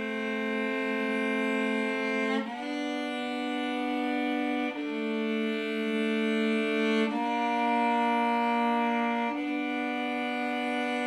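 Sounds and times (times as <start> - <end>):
cello bowed notes: 0.0 - 11.0.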